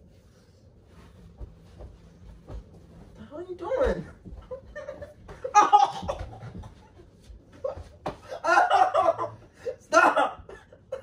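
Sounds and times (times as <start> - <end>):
scuffle on bed: 0.0 - 8.3.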